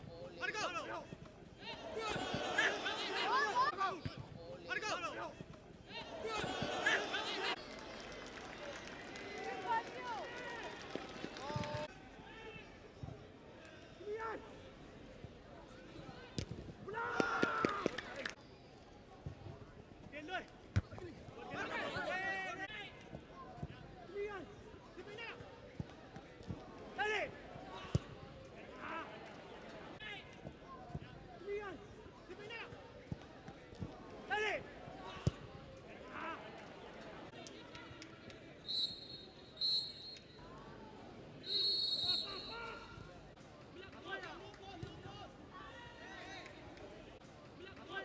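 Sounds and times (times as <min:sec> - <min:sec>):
players shouting: 0:00.4 - 0:07.6, 0:16.9 - 0:18.4, 0:20.2 - 0:22.9, 0:40.7 - 0:43.2
people shouting and calling: 0:01.6 - 0:04.0.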